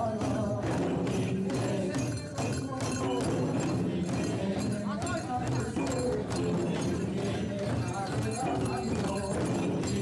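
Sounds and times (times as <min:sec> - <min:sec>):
barrel drums beaten in rhythm: 0:00.0 - 0:10.0.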